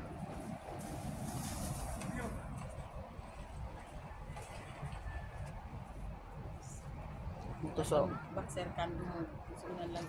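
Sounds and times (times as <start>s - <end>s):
low rumbling background noise: 0.0s - 10.0s.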